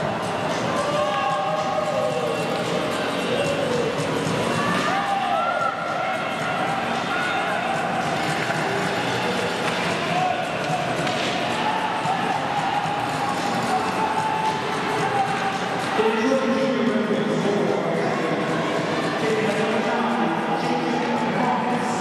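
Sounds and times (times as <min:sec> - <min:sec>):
spectator chatter: 0:00.0 - 0:22.0
hockey sticks and puck knocking: 0:10.6 - 0:11.5.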